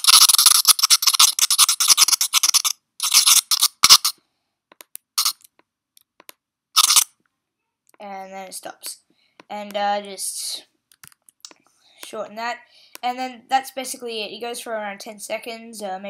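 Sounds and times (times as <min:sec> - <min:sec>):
pencil scratching on paper: 0:00.0 - 0:04.1.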